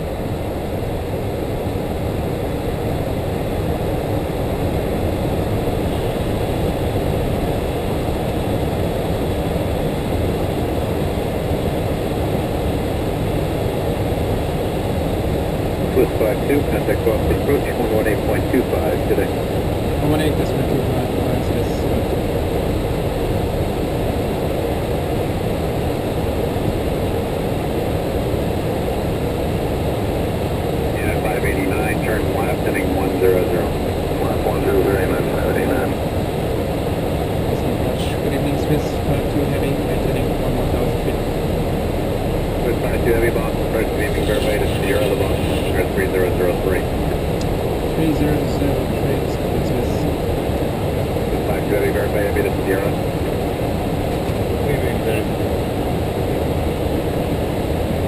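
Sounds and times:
airflow and engines rushing: 0.0s - 58.0s
indistinct voices: 15.9s - 22.2s, 30.9s - 36.0s, 37.5s - 41.5s, 42.4s - 50.2s, 51.3s - 53.0s, 54.1s - 55.3s.

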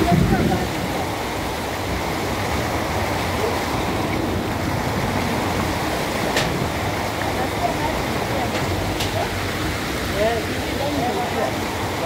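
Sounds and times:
floodwater rushing: 0.0s - 12.0s.

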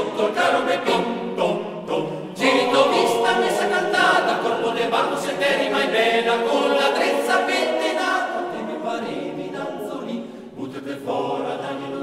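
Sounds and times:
male choir singing a cappella: 0.0s - 12.0s.

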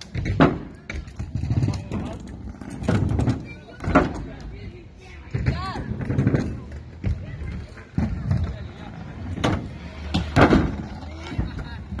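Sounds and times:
kick scooters rolling on ramps: 0.0s - 12.0s.

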